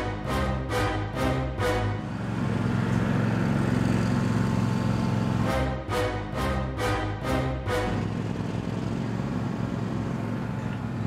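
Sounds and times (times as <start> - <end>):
lawn mower engines running: 0.0 - 11.0.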